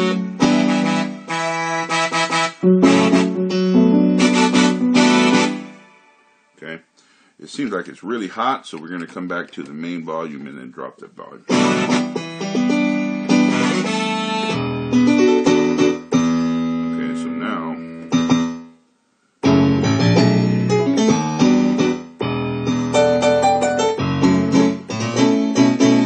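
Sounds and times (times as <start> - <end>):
synthesizer piano and brass chords: 0.0 - 6.8, 11.5 - 26.0.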